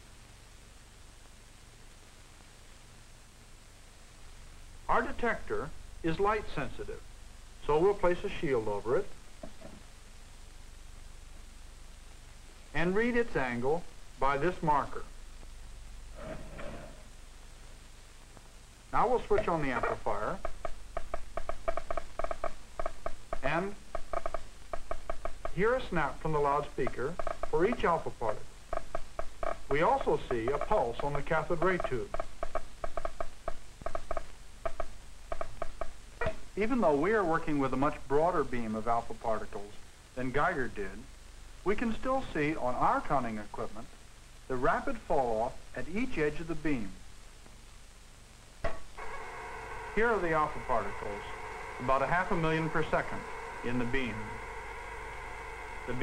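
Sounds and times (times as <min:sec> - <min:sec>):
low background hiss: 0:00.0 - 0:56.0
alpha particle counter buzzing: 0:18.9 - 0:36.6, 0:48.6 - 0:56.0.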